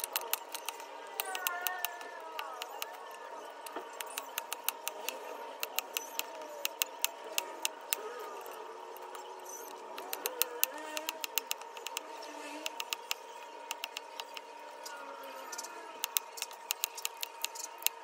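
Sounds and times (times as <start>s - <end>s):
high-pitched hum: 0.0s - 18.0s.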